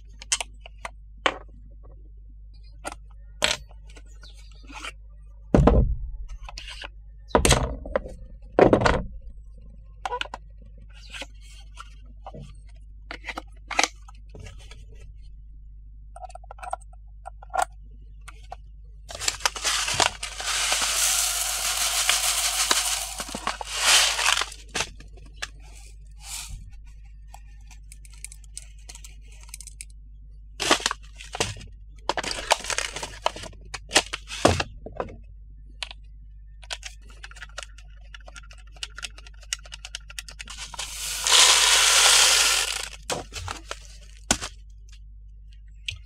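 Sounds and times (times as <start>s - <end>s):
seeds pouring from a plastic cup: 19.1s - 24.7s, 40.5s - 43.7s
foil packet crinkling: 19.1s - 24.9s, 32.2s - 34.3s, 40.4s - 44.1s.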